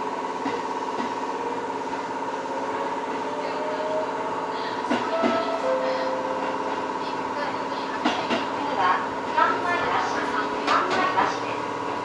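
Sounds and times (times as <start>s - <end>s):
electric train hum: 0.0s - 12.0s.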